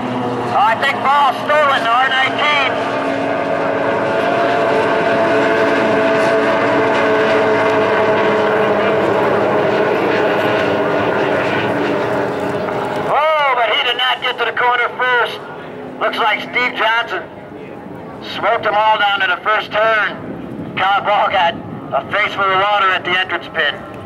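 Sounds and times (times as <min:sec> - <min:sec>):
racing outboard engines: 0:00.0 - 0:24.0.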